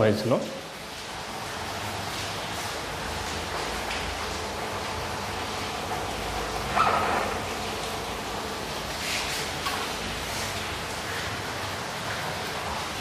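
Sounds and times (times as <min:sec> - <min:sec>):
room noise: 0:01.2 - 0:13.0.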